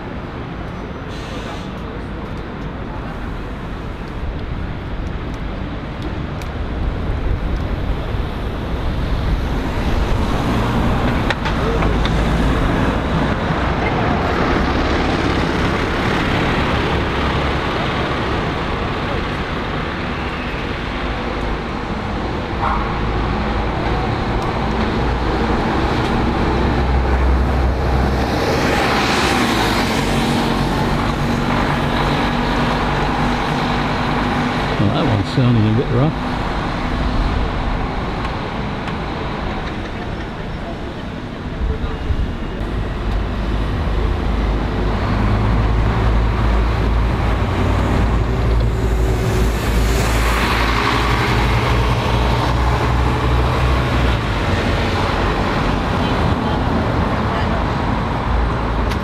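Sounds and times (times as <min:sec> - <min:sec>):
bus engine: 0:00.0 - 0:59.0
city street traffic: 0:00.0 - 0:59.0.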